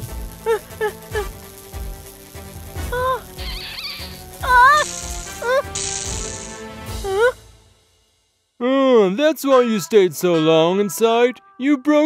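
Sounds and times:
cartoon background music: 0:00.0 - 0:08.0, 0:08.6 - 0:12.0
short hissing bursts: 0:00.1 - 0:06.8.

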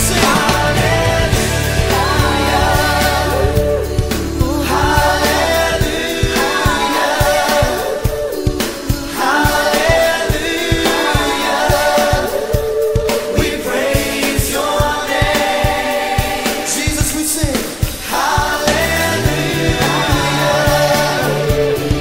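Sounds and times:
person singing pop song: 0:00.0 - 0:22.0
steady drum beat: 0:00.0 - 0:22.0.

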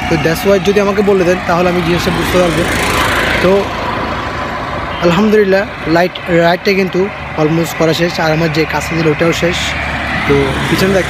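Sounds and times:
vehicle passing with rushing noise: 0:00.0 - 0:11.0.

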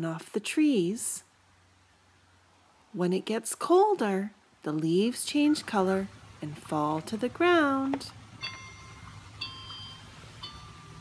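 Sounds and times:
toy electronic chime notes: 0:08.4 - 0:11.0.

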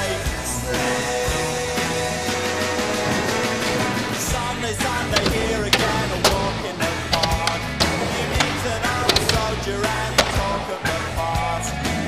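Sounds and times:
song with drum hits: 0:00.3 - 0:12.0.

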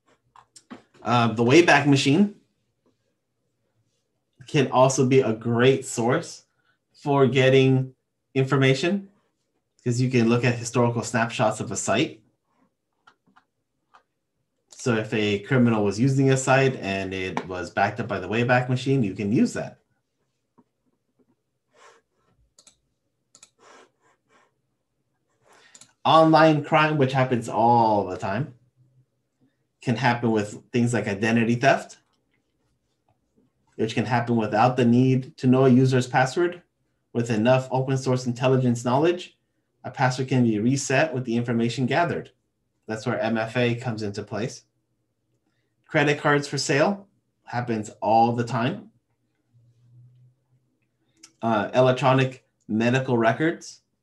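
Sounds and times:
faint keyboard clicks: 0:25.6 - 0:26.0.

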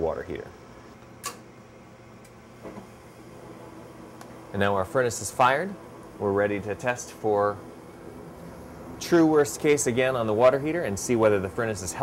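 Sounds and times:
blower humming: 0:00.0 - 0:12.0
sharp click: 0:01.2 - 0:01.4.

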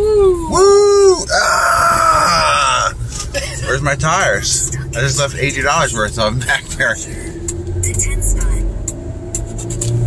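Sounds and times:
car tyres squealing: 0:00.0 - 0:05.6.

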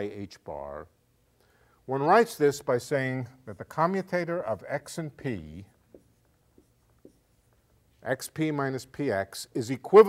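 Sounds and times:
chalk tapping on blackboard: 0:05.8 - 0:07.7.

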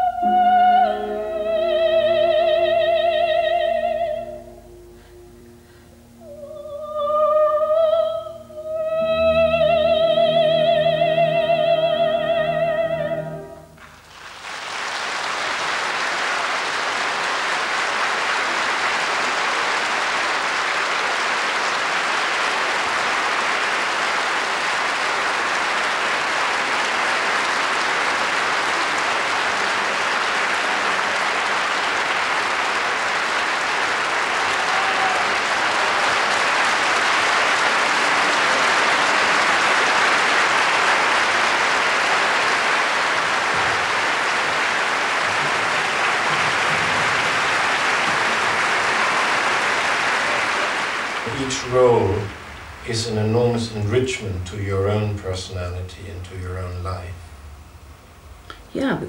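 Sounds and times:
large audience applauding: 0:13.8 - 0:56.7.

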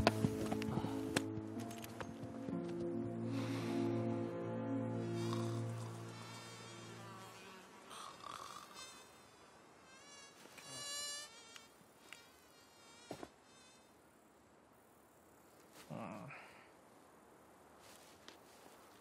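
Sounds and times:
flying insect buzzing: 0:05.0 - 0:14.2
faint clicks: 0:11.5 - 0:12.3.

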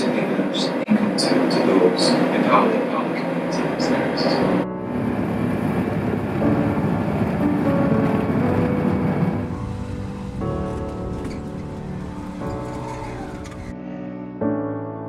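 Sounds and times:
three-wheeler taxi rumble: 0:03.5 - 0:13.7
background music sustained notes: 0:03.6 - 0:15.0.

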